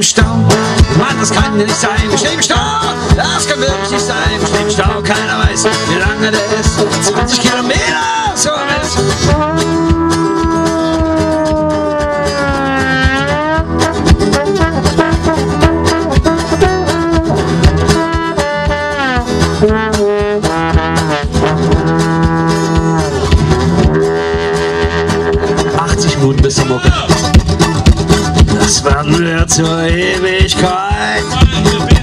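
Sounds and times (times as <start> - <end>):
strummed guitar: 0.0 - 32.0
blues trombone solo: 0.4 - 30.0.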